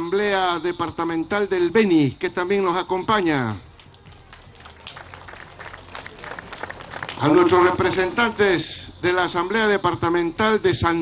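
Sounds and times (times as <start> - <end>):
crowd clapping: 3.9 - 8.2.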